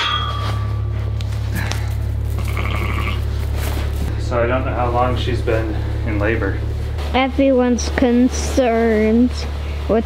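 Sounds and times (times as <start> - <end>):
metal gate ringing: 0.0 - 1.0
steady low hum: 0.0 - 10.0
sheep moving in straw: 2.0 - 4.1
sheep bleat: 2.4 - 3.2.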